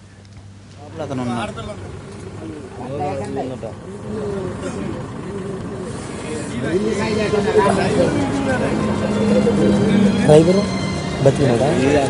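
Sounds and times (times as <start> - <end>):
people talking: 0.8 - 12.0.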